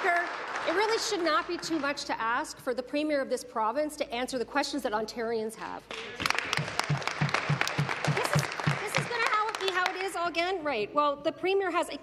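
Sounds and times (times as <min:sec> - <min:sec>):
crowd applauding in a large hall: 0:00.0 - 0:02.4, 0:05.9 - 0:10.1
nearby hand claps: 0:05.9 - 0:10.1.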